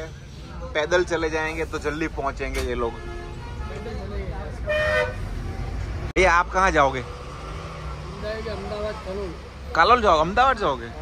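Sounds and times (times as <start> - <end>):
faint passenger voices: 0.0 - 6.1
bus engine rumble: 0.0 - 11.0
vehicle horn toot: 4.7 - 5.3.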